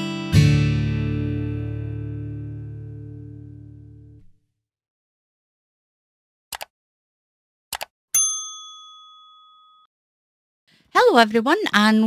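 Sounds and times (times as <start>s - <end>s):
notification bell ding: 8.2s - 9.9s.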